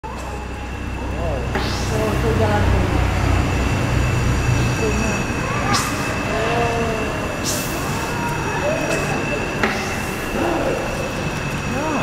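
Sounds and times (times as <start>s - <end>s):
steam engine rumble: 0.0s - 12.0s
murmur of voices: 4.4s - 12.0s.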